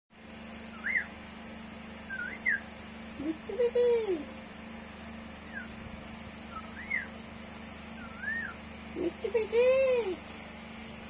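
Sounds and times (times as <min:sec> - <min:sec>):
steady low hum: 0:00.2 - 0:11.0
parakeet whistle: 0:00.7 - 0:01.2, 0:02.1 - 0:02.7, 0:05.4 - 0:05.8, 0:06.5 - 0:07.2, 0:08.0 - 0:08.7.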